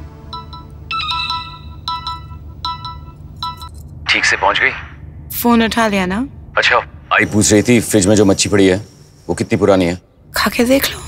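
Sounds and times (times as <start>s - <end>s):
phone ringtone chiming: 0.2s - 3.8s.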